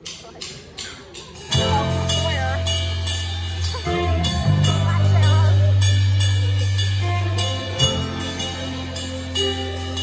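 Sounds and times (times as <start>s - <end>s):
drum cymbals: 0.0s - 10.0s
bass and electric guitars chord: 1.6s - 10.0s.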